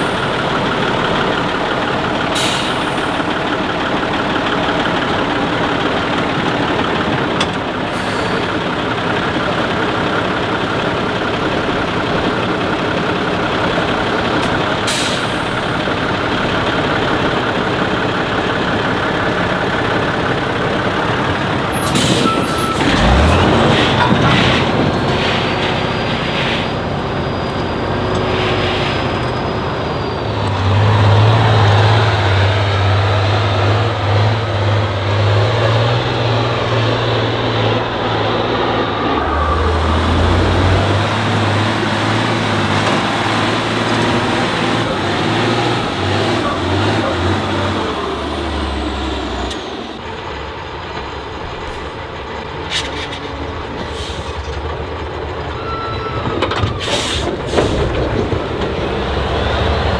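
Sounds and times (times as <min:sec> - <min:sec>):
truck diesel engine labouring: 0:00.0 - 0:59.9.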